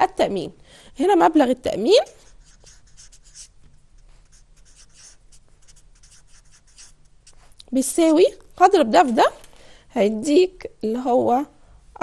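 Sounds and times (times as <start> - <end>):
faint low hum: 0.0 - 12.0
marker pen writing on whiteboard: 2.2 - 8.2.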